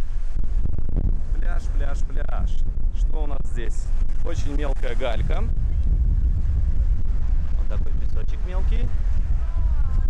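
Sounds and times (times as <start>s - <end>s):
wind buffeting microphone: 0.0s - 10.0s
people's voices: 7.1s - 10.0s.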